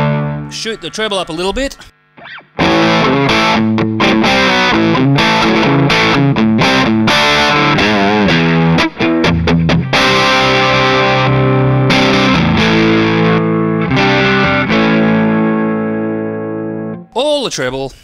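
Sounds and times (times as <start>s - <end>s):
electric guitar chords: 0.0s - 17.2s.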